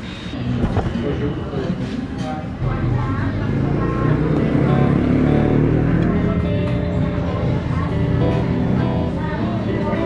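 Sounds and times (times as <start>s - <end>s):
voices of diners and staff: 0.0s - 10.0s.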